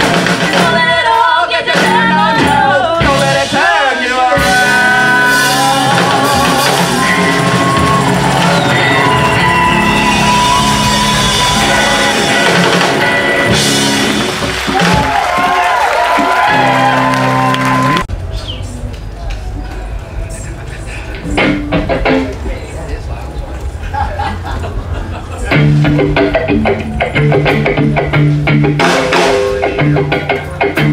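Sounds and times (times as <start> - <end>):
voices singing: 0.0 - 13.9
electric guitars: 0.0 - 18.0, 20.7 - 22.6, 24.8 - 30.9.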